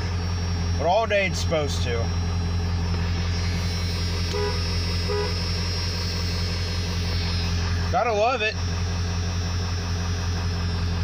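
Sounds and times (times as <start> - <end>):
diesel engine idling: 0.0 - 11.0
short beeps: 3.4 - 7.5.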